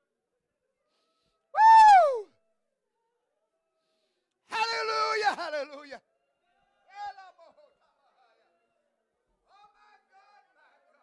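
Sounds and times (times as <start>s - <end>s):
high-pitched human cry: 1.6s - 2.3s.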